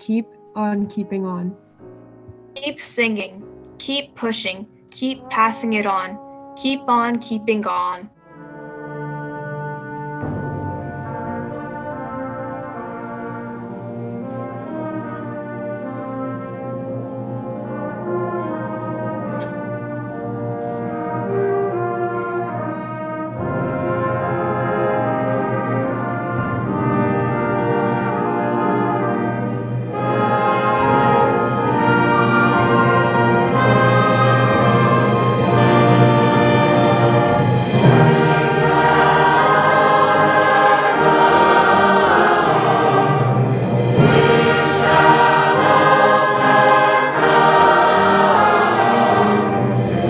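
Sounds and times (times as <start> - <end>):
band playing held brass chords: 4.3 - 16.7, 21.0 - 50.0.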